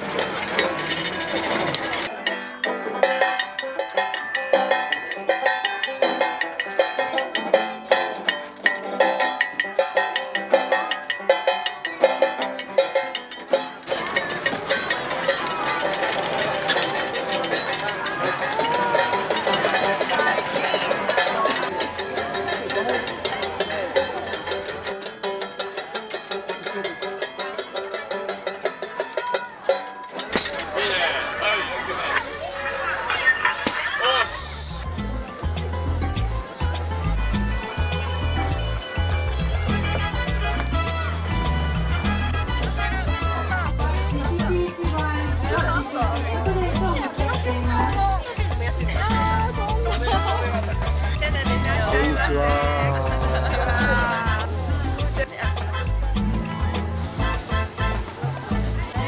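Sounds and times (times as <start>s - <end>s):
banjo: 0.0s - 59.0s
tin can beaten with drumstick: 0.1s - 30.7s
people talking: 13.5s - 41.0s, 42.6s - 59.0s.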